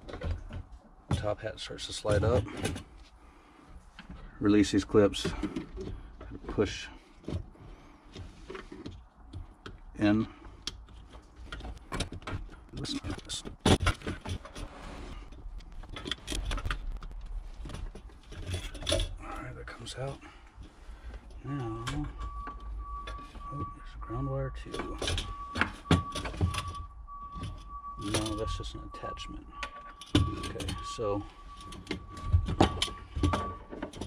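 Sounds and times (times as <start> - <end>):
faint steady high tone: 21.4 - 33.7.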